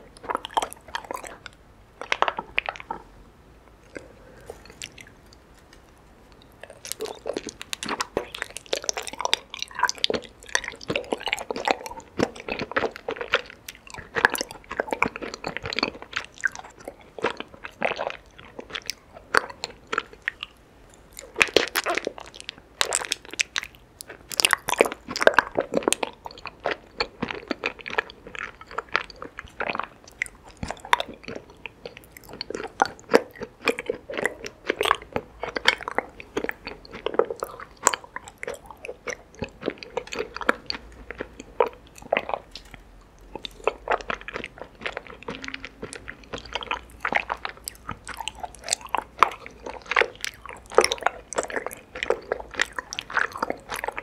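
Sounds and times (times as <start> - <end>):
close chewing with sticky clicks: 0.0 - 3.1, 3.8 - 54.0.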